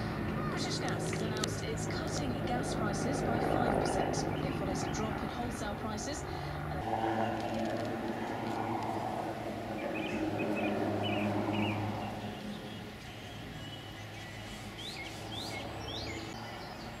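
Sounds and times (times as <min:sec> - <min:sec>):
distant helicopter hum: 0:00.0 - 0:17.0
small birds chirping: 0:00.0 - 0:17.0.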